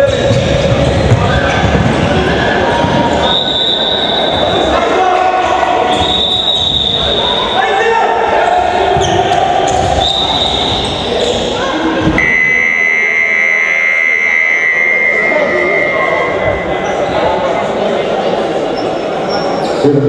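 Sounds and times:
players' voices: 0:00.0 - 0:20.0
short high whistle-like tones: 0:03.2 - 0:04.5, 0:05.9 - 0:07.6, 0:12.2 - 0:16.8
long steady high tone: 0:12.2 - 0:17.2.

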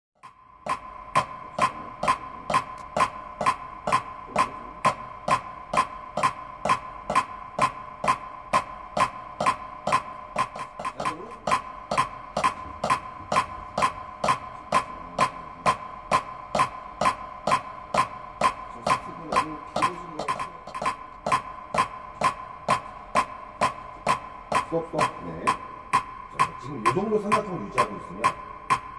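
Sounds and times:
drumsticks clicking on practice pad: 0:00.2 - 0:28.9.

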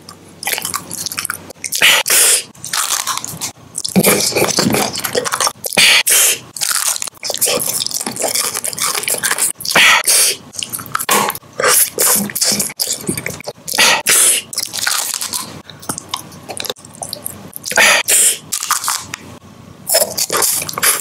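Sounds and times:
chewing: 0:00.0 - 0:05.9, 0:06.5 - 0:19.2, 0:19.9 - 0:21.0
hard candy crunching: 0:00.4 - 0:19.2.

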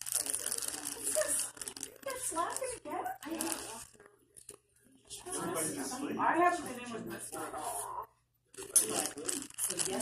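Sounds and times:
paper crinkling and tearing: 0:00.0 - 0:04.6, 0:08.6 - 0:10.0.

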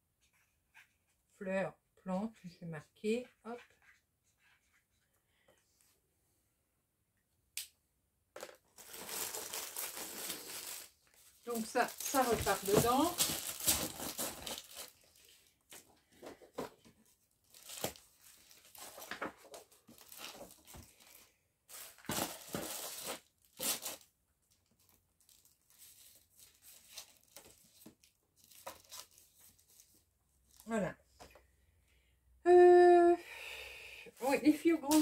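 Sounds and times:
plastic packets rustling: 0:08.4 - 0:16.7, 0:17.4 - 0:30.6, 0:34.2 - 0:35.0.

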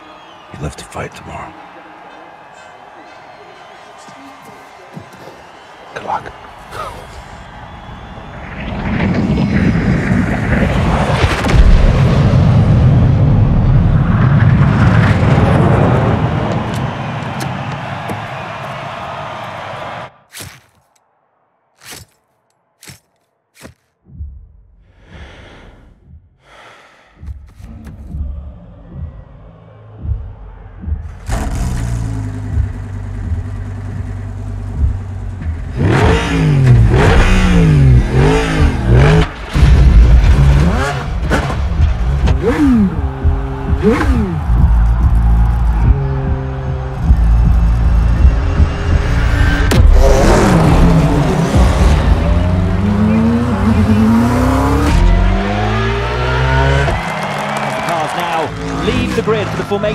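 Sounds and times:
racing car engines revving: 0:31.0 - 0:59.9.

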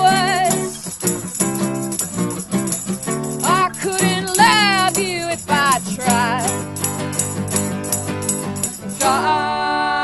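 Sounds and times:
woman singing: 0:00.0 - 0:00.9, 0:03.4 - 0:06.7, 0:08.9 - 0:10.0
tambourine jingling: 0:00.0 - 0:09.5
acoustic guitar strummed: 0:00.0 - 0:10.0.

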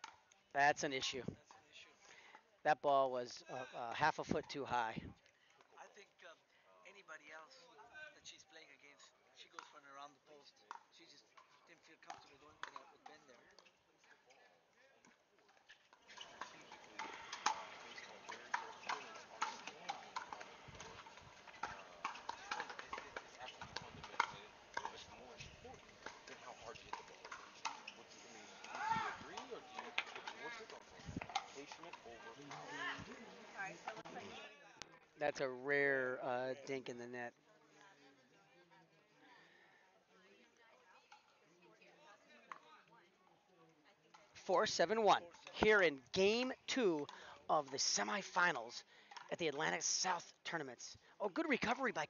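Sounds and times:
paddles hitting plastic ball: 0:16.2 - 0:33.2.

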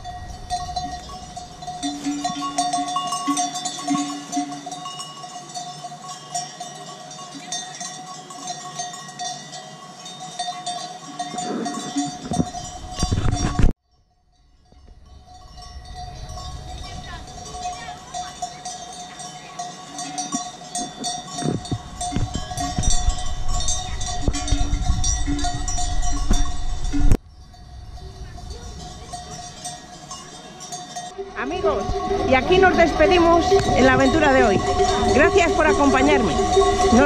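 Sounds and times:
sheep bells clanking: 0:00.0 - 0:37.0.

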